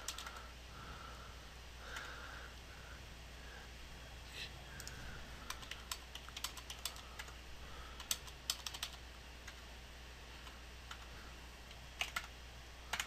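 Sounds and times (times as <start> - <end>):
computer keyboard typing: 0.0 - 0.5, 4.7 - 9.6, 10.4 - 13.0.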